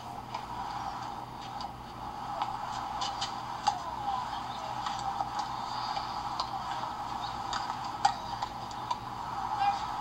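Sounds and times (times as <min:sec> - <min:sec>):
steady background hum: 0:00.0 - 0:10.0
tennis balls struck and bouncing: 0:00.2 - 0:10.0.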